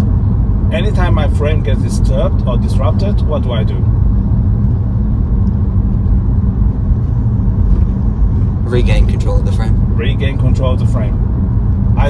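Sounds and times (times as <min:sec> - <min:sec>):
road rumble and tyre noise: 0:00.0 - 0:12.0.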